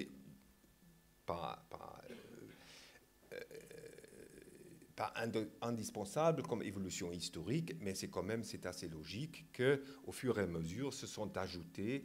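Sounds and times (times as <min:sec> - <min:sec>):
man clearing throat: 0:02.0 - 0:02.6, 0:03.3 - 0:04.4
man hesitating euh: 0:03.3 - 0:04.9.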